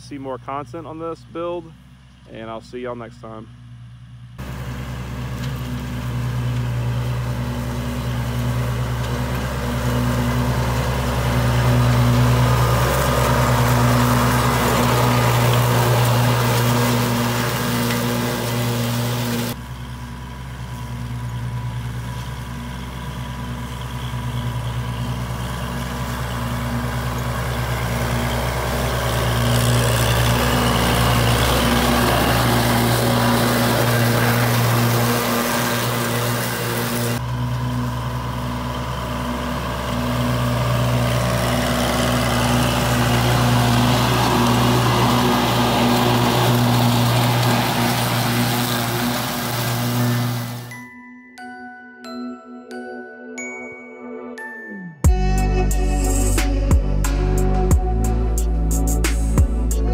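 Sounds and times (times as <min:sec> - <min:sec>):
tractor diesel engine running: 0:00.0 - 0:50.8, 0:55.1 - 0:59.9.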